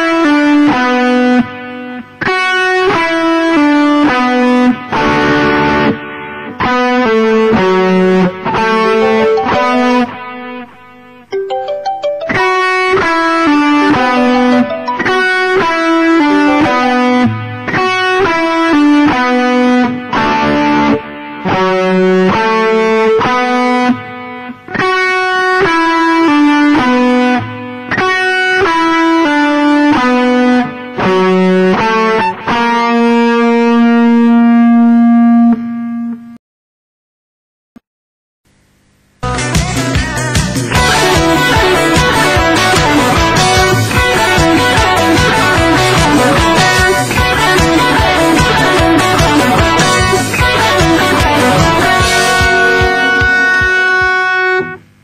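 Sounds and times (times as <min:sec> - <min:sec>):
electric guitar lead solo: 0:00.0 - 0:36.4, 0:39.2 - 0:55.0.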